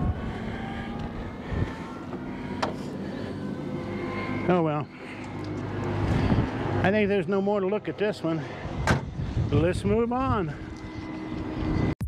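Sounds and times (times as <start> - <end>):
wind noise on microphone: 0.0 - 2.0, 6.0 - 6.8, 8.6 - 12.0
machine engine hum: 0.0 - 12.0.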